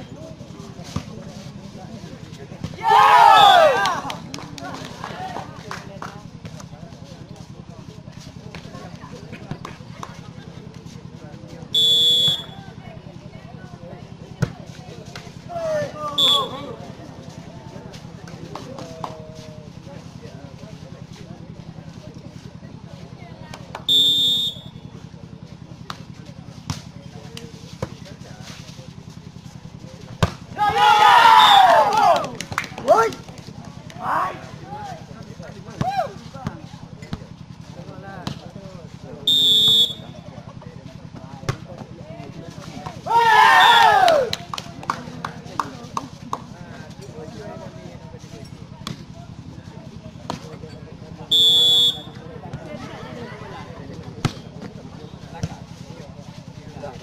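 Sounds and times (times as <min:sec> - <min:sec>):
spectators shouting and cheering: 0:02.7 - 0:05.5, 0:30.5 - 0:33.2, 0:34.0 - 0:34.9, 0:43.0 - 0:44.6
referee's whistle blast: 0:11.8 - 0:12.6, 0:16.2 - 0:16.6, 0:23.9 - 0:24.8, 0:39.3 - 0:40.1, 0:51.3 - 0:52.2.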